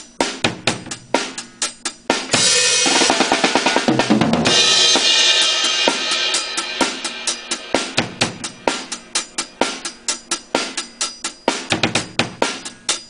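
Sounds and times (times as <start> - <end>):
snare and drum strokes: 0.0 - 13.0
cymbal crash: 2.3 - 9.9.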